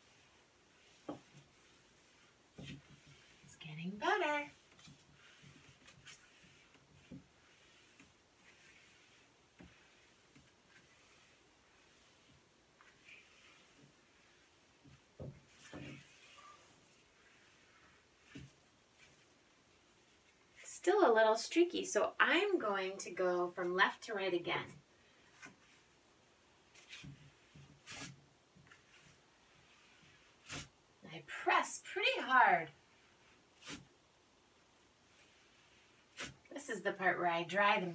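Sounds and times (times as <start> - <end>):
newspaper rubbing on glass: 0.0 - 19.4.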